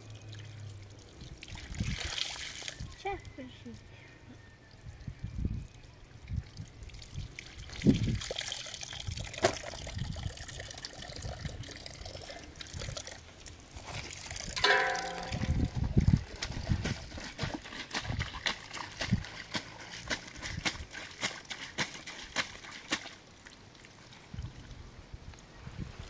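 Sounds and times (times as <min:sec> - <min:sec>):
clothes rinsed and wrung: 0:00.0 - 0:03.6, 0:06.6 - 0:25.5
water trickling over rocks: 0:00.0 - 0:03.8, 0:04.6 - 0:26.0
low handling thumps: 0:14.6 - 0:16.2.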